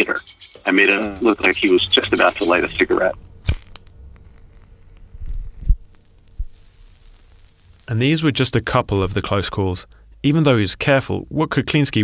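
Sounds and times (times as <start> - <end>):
low steady hum: 0.0 - 12.0
low rumble: 0.8 - 9.6
cigarette burning crackle: 1.9 - 9.4.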